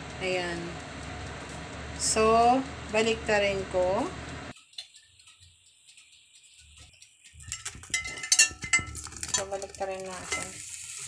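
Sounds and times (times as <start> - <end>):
steady hum: 0.0 - 8.9
hot fat sizzling: 6.0 - 11.0.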